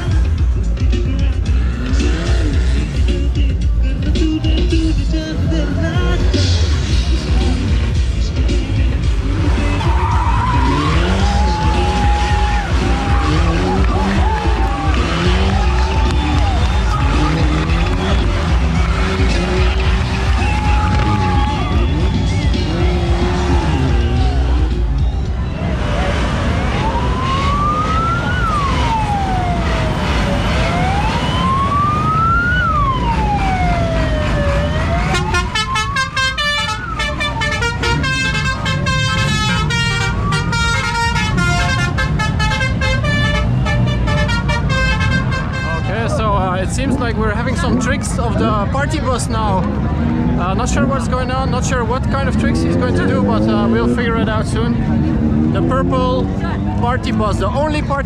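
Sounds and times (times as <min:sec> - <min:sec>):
loud music with fast beat: 0:00.0 - 0:25.4
car engine revving hard: 0:01.5 - 0:03.2, 0:08.9 - 0:25.0, 0:25.6 - 0:35.9, 0:37.3 - 0:45.5, 0:49.6 - 0:57.5
siren-style wail: 0:09.6 - 0:43.4.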